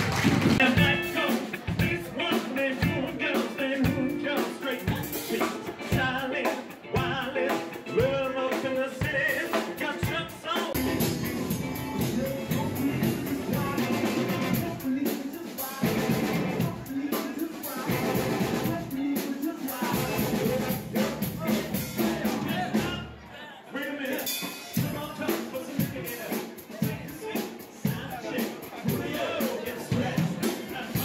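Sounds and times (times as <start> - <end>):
drum kit beat: 0.0 - 23.1, 24.0 - 31.0
live band playing upbeat music: 0.0 - 23.2, 23.8 - 31.0
guests' voices: 0.0 - 31.0.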